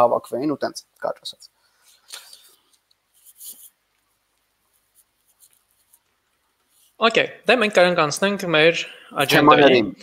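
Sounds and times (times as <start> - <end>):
faint rustles or clicks: 0.9 - 7.0.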